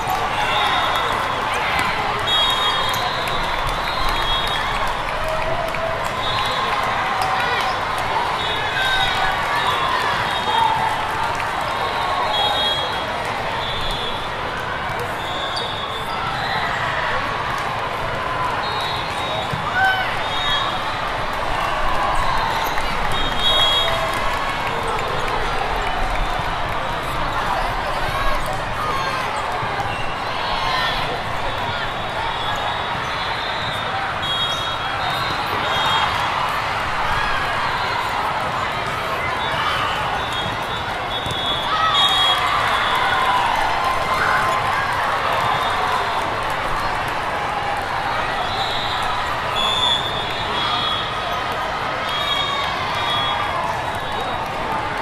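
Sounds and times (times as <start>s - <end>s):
many overlapping voices: 0.0s - 55.0s.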